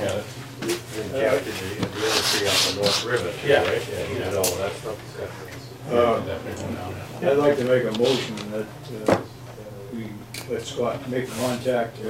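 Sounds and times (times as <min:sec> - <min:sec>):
rubbing rasping noise: 0:01.8 - 0:03.2.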